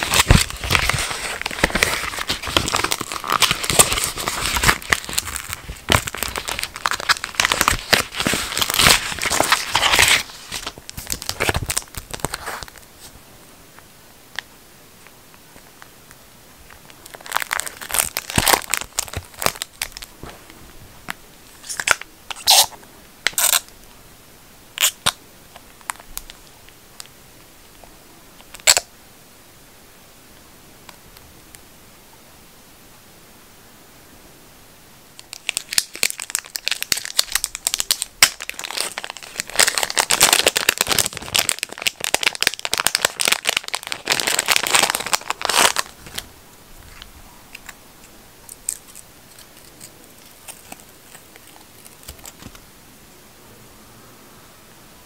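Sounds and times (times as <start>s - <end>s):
small clicks and crinkles: 45.1s - 52.6s.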